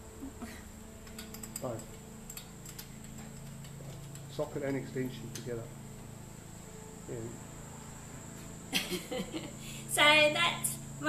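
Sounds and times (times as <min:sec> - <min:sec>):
metallic clicks of ratchet tools: 0:01.0 - 0:04.4.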